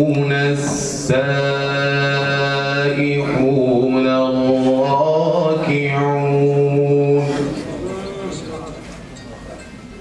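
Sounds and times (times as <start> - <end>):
man chanting: 0.0 - 8.6.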